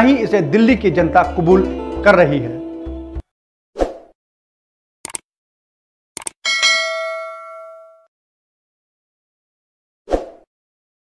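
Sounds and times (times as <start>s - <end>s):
short mouse clicks: 5.0s - 5.2s, 6.2s - 6.4s
notification bell ding: 6.5s - 8.1s.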